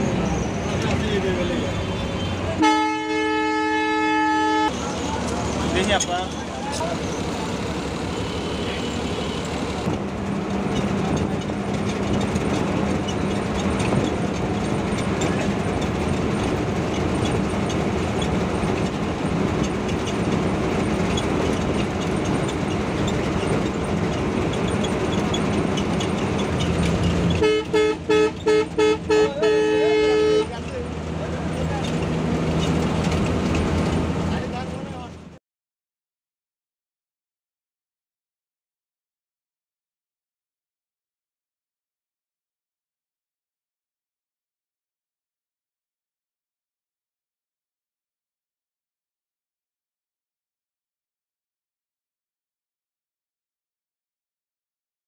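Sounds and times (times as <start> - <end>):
bus engine running: 0.0 - 35.4
road noise: 0.0 - 35.4
bus horn: 1.1 - 5.1, 8.2 - 9.9, 26.5 - 30.8.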